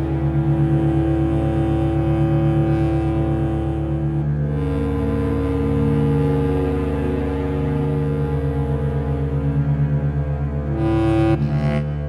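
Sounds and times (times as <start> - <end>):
background music with pulsing bass: 0.0 - 12.0.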